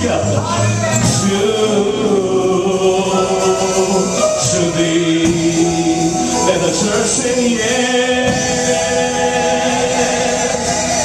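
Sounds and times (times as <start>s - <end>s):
live gospel singing with band: 0.0s - 11.0s.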